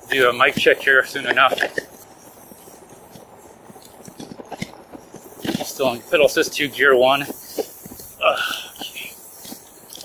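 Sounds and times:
bike tyres rumbling over grass: 0:00.0 - 0:10.0.

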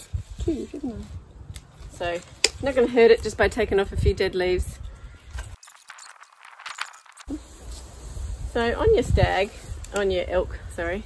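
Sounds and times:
dry fronds crackling and rustling: 0:00.0 - 0:11.0.

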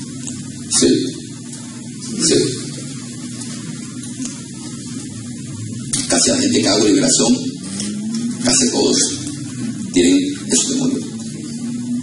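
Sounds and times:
faint low hum: 0:00.0 - 0:12.0
room noise hiss: 0:00.0 - 0:12.0.

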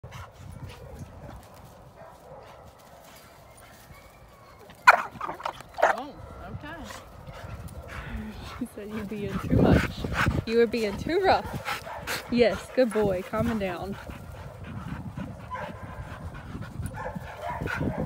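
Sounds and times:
dog barking: 0:02.0 - 0:02.8, 0:11.4 - 0:12.1, 0:15.5 - 0:16.0, 0:16.9 - 0:18.0.

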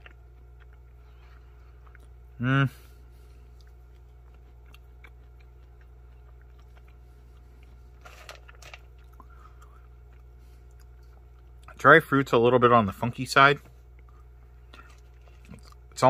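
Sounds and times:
chewing dried fruit: 0:00.0 - 0:11.8, 0:13.9 - 0:16.0
steady low hum: 0:00.0 - 0:16.0.

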